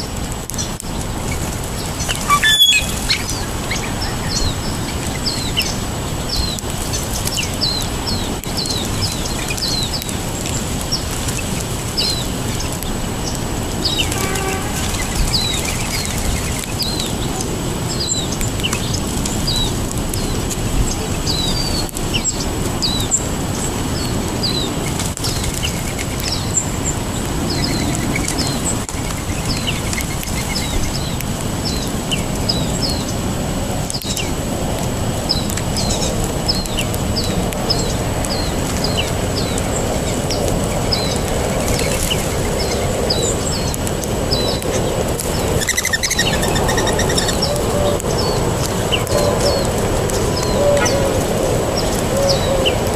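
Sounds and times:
songbirds chirping: 0.5s - 33.3s, 35.2s - 52.9s.

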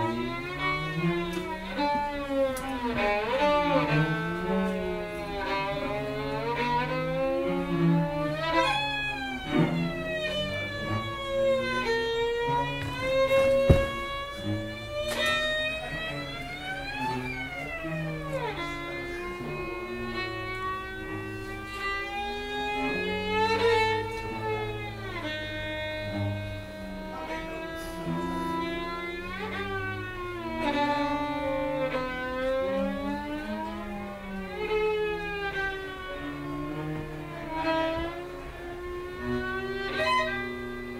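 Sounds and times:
held low cello notes: 0.0s - 40.9s
violin note gliding: 0.0s - 40.9s.

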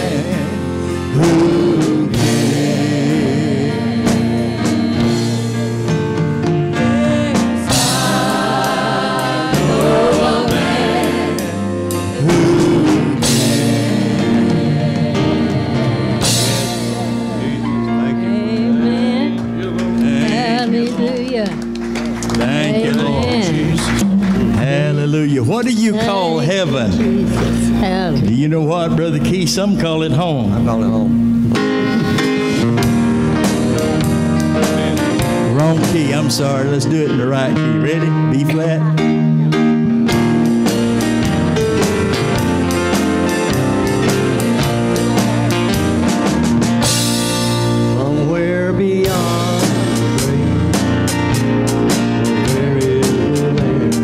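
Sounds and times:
group of voices singing: 0.0s - 21.4s, 22.4s - 25.0s, 48.0s - 54.0s
drum kit steady beat: 0.0s - 28.4s, 30.6s - 37.7s, 38.5s - 54.0s
bass: 0.0s - 54.0s
praise band playing: 0.0s - 54.0s
sustained keyboard chords: 0.0s - 54.0s.

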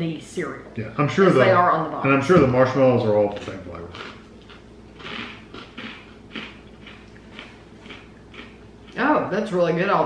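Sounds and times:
chewing crunchy cereal: 3.3s - 9.0s.

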